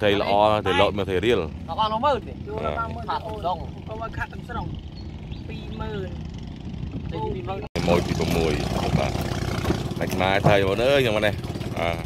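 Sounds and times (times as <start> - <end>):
low engine hum: 0.0 - 12.0
people talking: 7.1 - 9.1, 10.0 - 12.0.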